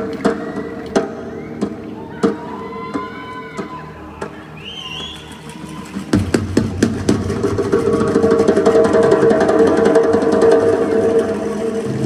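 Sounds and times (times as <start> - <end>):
live band through arena speakers: 0.0 - 12.0.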